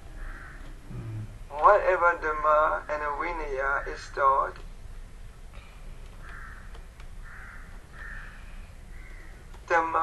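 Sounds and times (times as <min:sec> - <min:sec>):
steady low hum: 0:00.0 - 0:10.0
bird giving harsh calls: 0:06.2 - 0:09.4.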